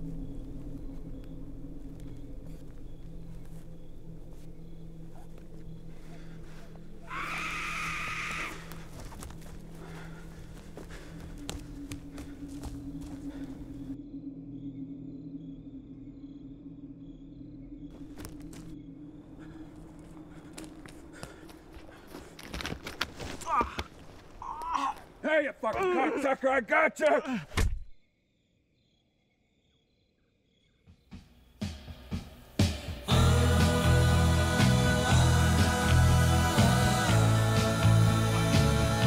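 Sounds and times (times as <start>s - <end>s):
steps on forest floor: 0.0s - 14.0s, 17.9s - 26.6s
low sustained drone: 0.0s - 21.2s
voices: 23.4s - 27.4s.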